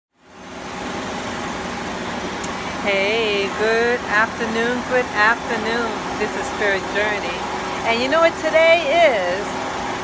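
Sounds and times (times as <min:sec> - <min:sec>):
city street noise: 0:00.1 - 0:10.0.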